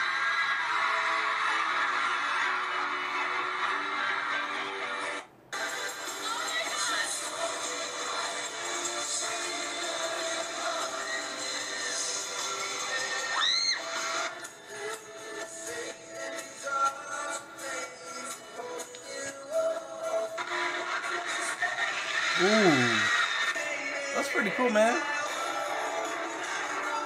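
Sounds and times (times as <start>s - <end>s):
crowd noise: 22.3s - 23.3s.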